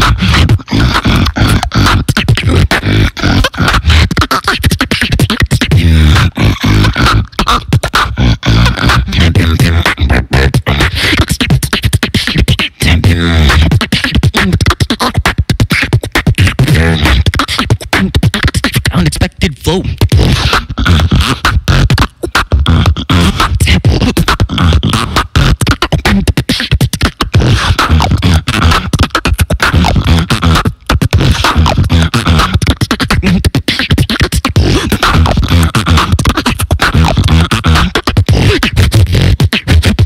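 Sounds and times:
person beatboxing into microphone: 0.0 - 40.0.

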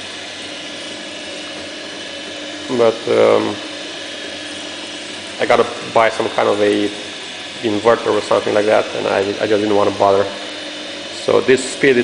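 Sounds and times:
planer feed rollers running: 0.0 - 12.0.

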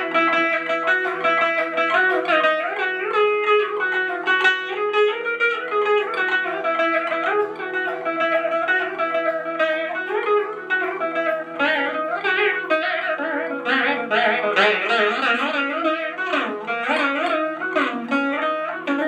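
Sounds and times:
drone strings ringing: 0.0 - 19.0
plucked veena melody: 0.0 - 19.0.

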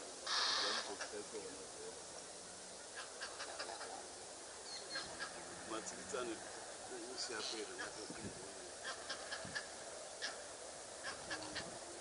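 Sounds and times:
soft background bird calls: 0.0 - 12.0
bird harsh squawk: 0.2 - 1.2, 2.9 - 4.0, 4.6 - 5.4, 8.8 - 11.7.

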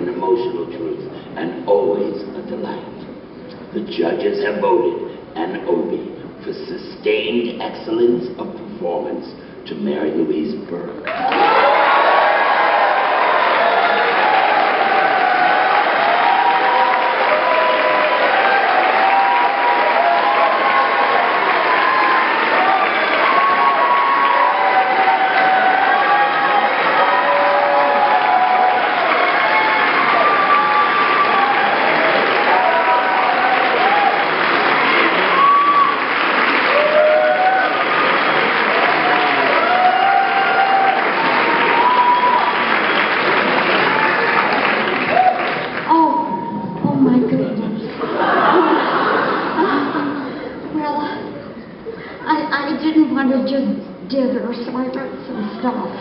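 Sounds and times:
audience applauding: 11.0 - 46.2
crowd cheering: 11.0 - 46.8, 47.9 - 50.6.

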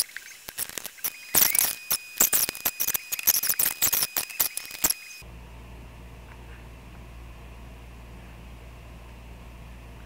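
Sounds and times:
faint high whine: 0.0 - 10.0
low steady hum: 4.9 - 10.0.

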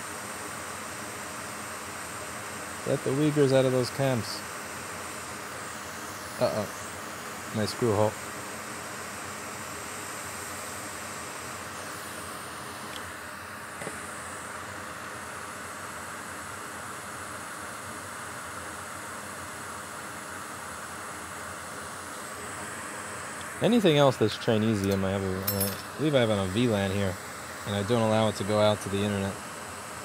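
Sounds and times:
steady background hiss: 0.0 - 30.0.

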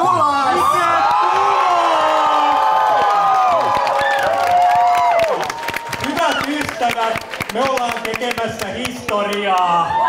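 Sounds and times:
crowd cheering: 0.0 - 10.0
clapping: 2.9 - 9.7.

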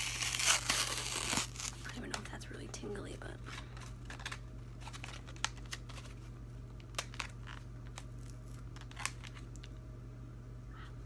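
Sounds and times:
packaging crinkling and tearing: 0.0 - 2.2, 3.5 - 9.8
steady low hum: 0.0 - 11.0.

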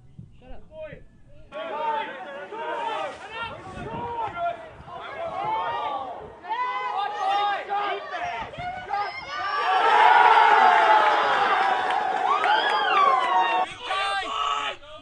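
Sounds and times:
crowd cheering: 1.5 - 14.8
voices shouting: 1.5 - 14.8.

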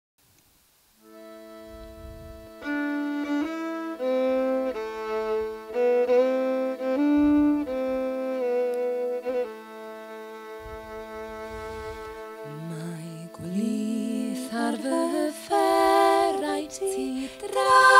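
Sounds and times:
fiddle playing slow melody: 1.0 - 17.9
steady drone: 1.0 - 17.9.

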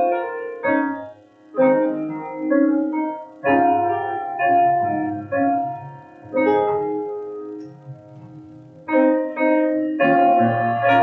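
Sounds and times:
grand piano playing hymn: 0.0 - 11.0.

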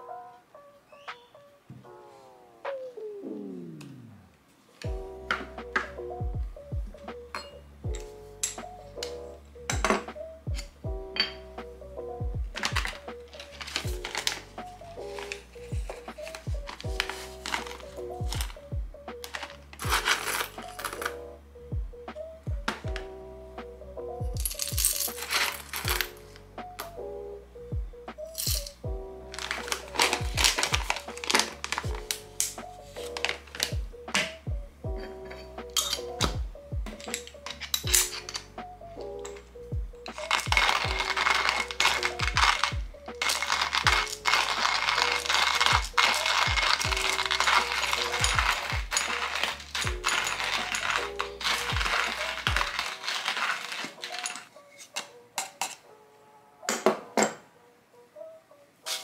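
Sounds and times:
soft background music: 0.0 - 59.0
hand coffee grinder grinding beans: 12.6 - 18.6, 19.2 - 21.1, 24.5 - 26.2, 29.3 - 33.8, 40.0 - 55.7
coffee beans pouring into metal hopper: 40.2 - 54.4.

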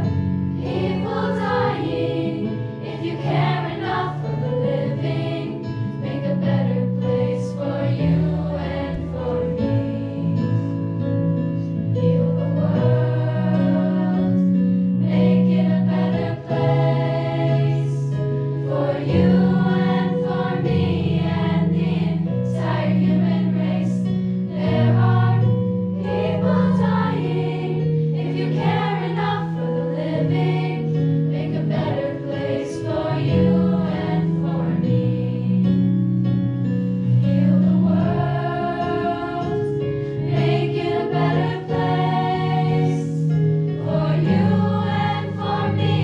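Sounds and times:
girls choir singing: 0.0 - 10.8, 12.1 - 35.8, 37.2 - 46.0.

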